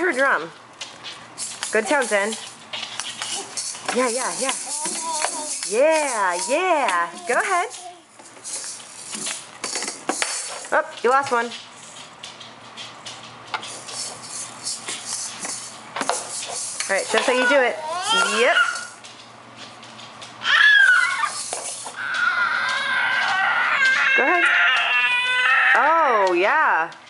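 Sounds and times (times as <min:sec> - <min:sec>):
toy maracas rattling: 0:01.0 - 0:19.2, 0:19.8 - 0:25.4
baby squealing: 0:17.2 - 0:19.0, 0:20.4 - 0:21.4, 0:22.0 - 0:25.8.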